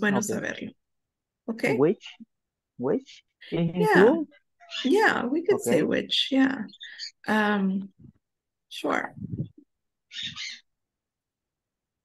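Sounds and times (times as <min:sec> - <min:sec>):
person's voice over video call: 0:00.0 - 0:00.7, 0:01.5 - 0:04.3, 0:04.9 - 0:06.6.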